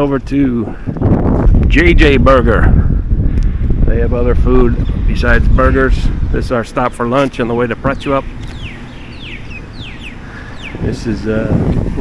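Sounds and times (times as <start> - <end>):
low rumble of wind: 0.0 - 12.0
bird calling high falling notes: 8.5 - 10.8.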